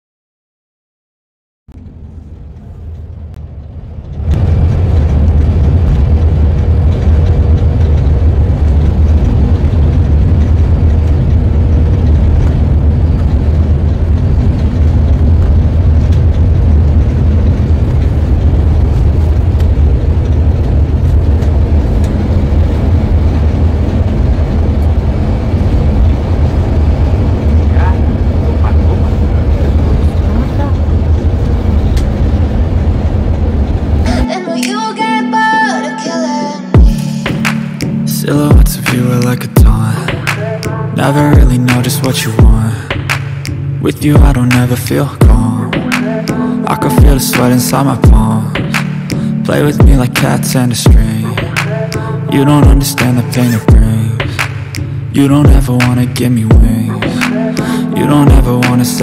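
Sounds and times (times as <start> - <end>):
bus engine and road rumble: 1.7 - 59.0.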